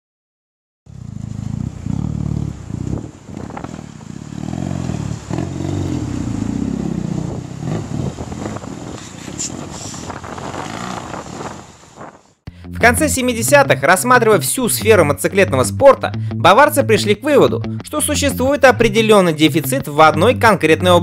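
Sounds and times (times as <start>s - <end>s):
motorcycle engine revving: 0.9s - 12.3s.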